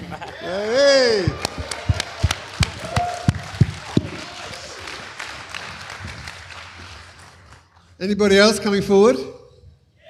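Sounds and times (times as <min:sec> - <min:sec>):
audience applause and cheering: 0:00.2 - 0:07.7
loud thumps in steady beat: 0:01.1 - 0:04.2.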